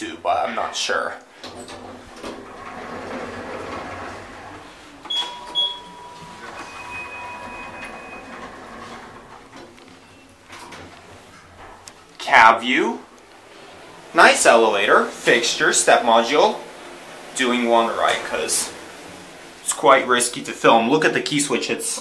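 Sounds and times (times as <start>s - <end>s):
elevator doors sliding: 0.7s - 22.0s
short high beeps: 5.1s - 8.3s.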